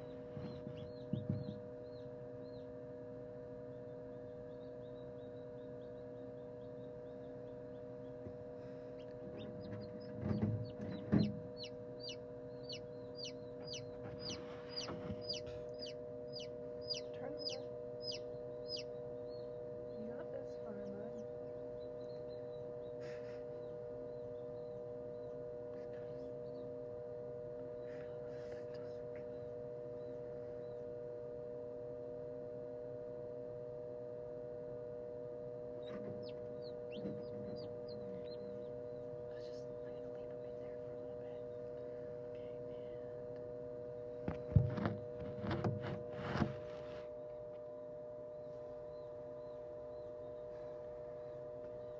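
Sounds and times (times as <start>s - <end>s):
steady hum: 0.0s - 51.9s
chick peeping: 0.3s - 2.6s, 6.6s - 21.2s, 35.8s - 40.1s.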